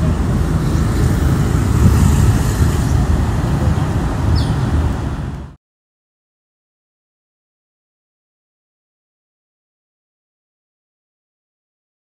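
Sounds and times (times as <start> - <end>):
low outdoor rumble: 0.0 - 5.6.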